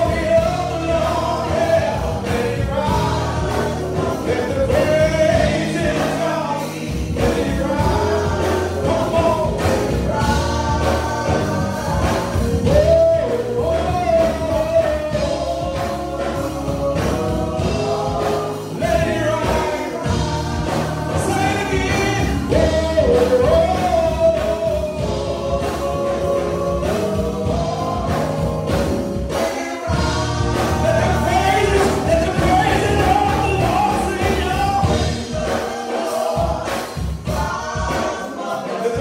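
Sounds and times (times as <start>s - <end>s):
group singing gospel: 0.0s - 39.0s
instrumental accompaniment with beat: 0.0s - 39.0s.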